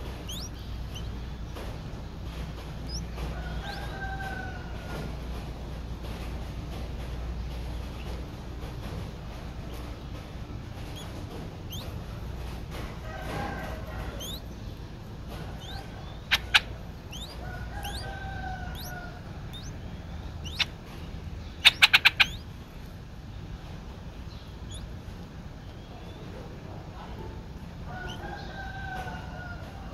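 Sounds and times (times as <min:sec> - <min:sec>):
high upward-flicking bird chirps: 0:00.0 - 0:01.8, 0:02.8 - 0:04.4, 0:10.8 - 0:12.1, 0:13.4 - 0:23.0, 0:24.3 - 0:25.0, 0:28.0 - 0:29.2.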